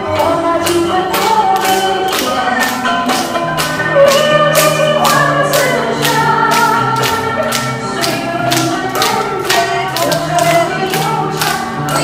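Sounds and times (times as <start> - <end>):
upbeat music with steady beat: 0.0 - 12.0.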